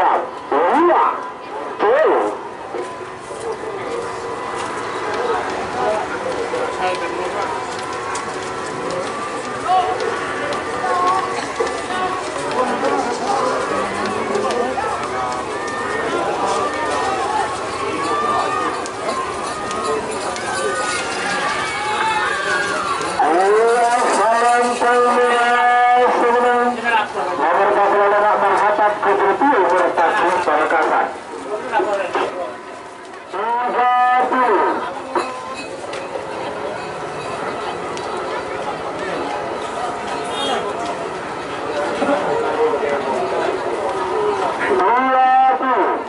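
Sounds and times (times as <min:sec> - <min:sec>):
crowd shouting and cheering: 0:00.0 - 0:32.6, 0:37.8 - 0:46.0.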